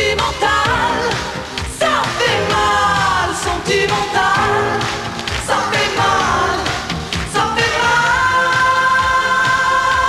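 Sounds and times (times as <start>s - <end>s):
backing music: 0.0s - 10.0s
woman singing pop song: 0.0s - 10.0s.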